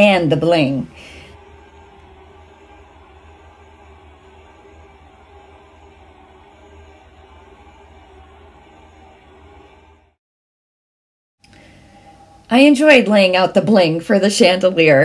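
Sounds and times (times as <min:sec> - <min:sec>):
low hum: 0:00.0 - 0:10.2.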